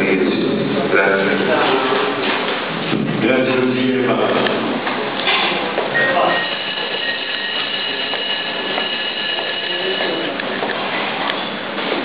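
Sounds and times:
murmur of voices: 0.0s - 12.0s
faint high whine: 5.9s - 10.4s.

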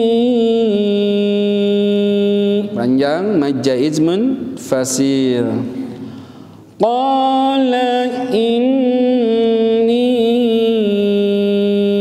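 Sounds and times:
man reciting melodically: 0.0s - 12.0s
man speaking: 2.8s - 6.0s.

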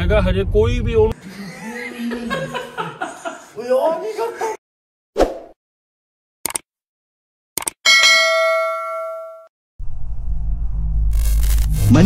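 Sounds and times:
bright bell ding: 7.9s - 9.5s.

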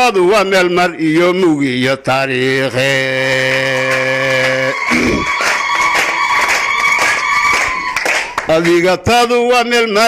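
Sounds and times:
hand clapping: 3.4s - 8.8s.

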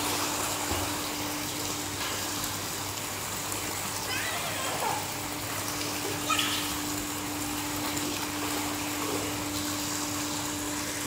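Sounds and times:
fountain water gushing into pool: 0.0s - 11.0s.

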